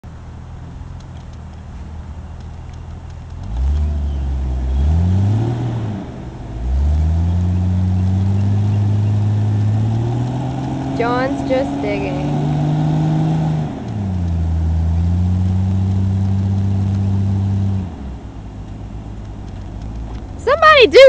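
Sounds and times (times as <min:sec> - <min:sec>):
engine idling and revving: 0:00.0 - 0:21.0.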